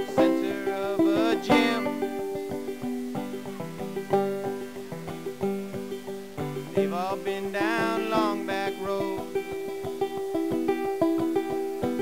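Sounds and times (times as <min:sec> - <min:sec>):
person singing gliding notes: 0:00.0 - 0:04.9, 0:06.6 - 0:10.1
banjo picking: 0:00.0 - 0:12.0.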